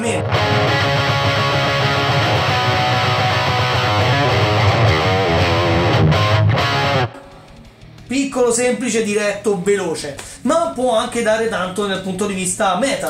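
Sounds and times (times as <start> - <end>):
distorted electric guitar riff: 0.0 - 9.4.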